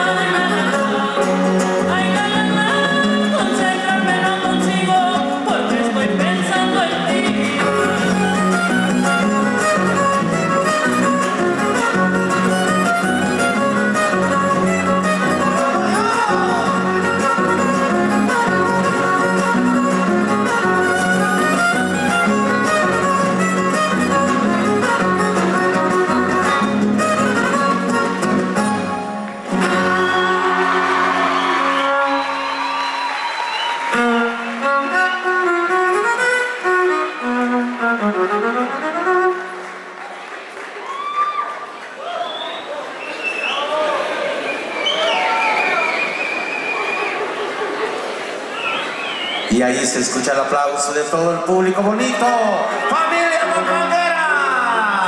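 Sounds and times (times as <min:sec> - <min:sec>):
strummed guitars: 0:00.0 - 0:40.0, 0:51.3 - 0:55.0
violin: 0:00.0 - 0:40.0, 0:49.5 - 0:55.0
audience applauding: 0:28.3 - 0:50.1
audience calling out: 0:29.3 - 0:34.6, 0:40.8 - 0:50.3.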